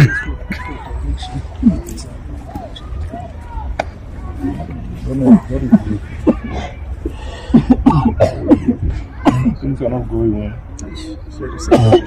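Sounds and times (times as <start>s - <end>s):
person coughing: 7.5s - 9.6s, 11.6s - 12.0s.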